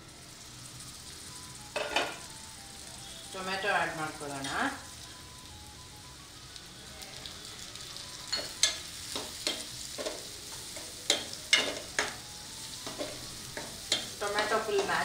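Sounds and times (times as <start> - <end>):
onions sizzling in oil: 0.0 - 15.0.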